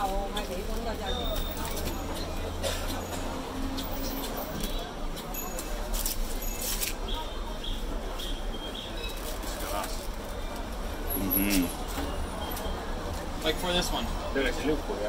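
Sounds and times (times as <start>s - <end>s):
busy market background: 0.0s - 15.0s
plastic film and glass clicking: 3.7s - 7.1s.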